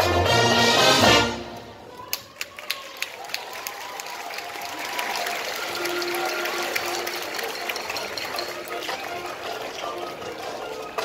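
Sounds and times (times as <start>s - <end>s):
marching band soft held notes: 0.0s - 1.8s
stadium crowd noise: 0.0s - 11.0s.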